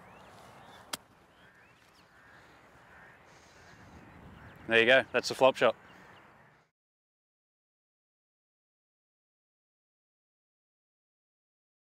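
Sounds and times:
faint bird calls: 0.0s - 6.7s.

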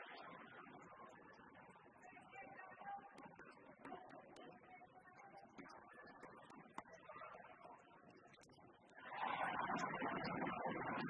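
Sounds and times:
crowd noise: 2.0s - 11.0s.

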